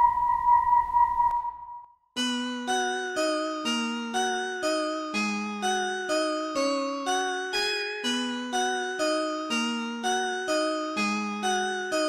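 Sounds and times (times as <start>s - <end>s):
sustained high wavering tone: 0.0s - 1.9s.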